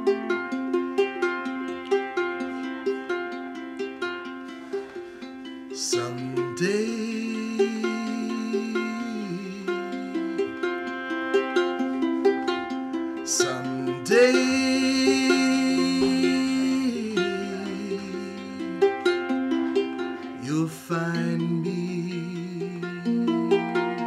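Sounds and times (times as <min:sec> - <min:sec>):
bowed cello: 0:00.0 - 0:24.0
ukulele picking: 0:00.0 - 0:24.0
man singing held notes: 0:05.8 - 0:10.5, 0:13.3 - 0:19.3, 0:20.4 - 0:24.0.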